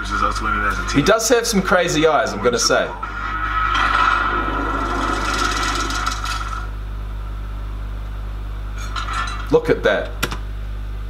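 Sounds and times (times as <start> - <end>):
low steady hum: 0.0 - 11.0
rasping grinding sound effect: 2.9 - 6.7.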